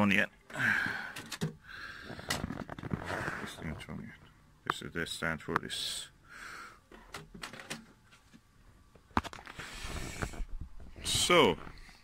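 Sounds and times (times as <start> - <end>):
equipment handling clicks and knocks: 1.2 - 1.6.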